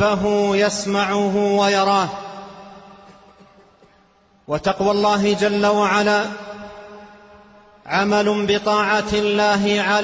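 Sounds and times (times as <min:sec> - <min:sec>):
man chanting sermon: 0:00.0 - 0:03.3, 0:04.4 - 0:10.0
reverberation: 0:00.0 - 0:10.0.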